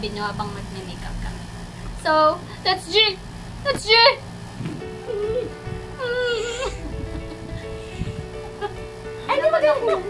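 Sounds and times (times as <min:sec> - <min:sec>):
background music: 0:04.7 - 0:10.0.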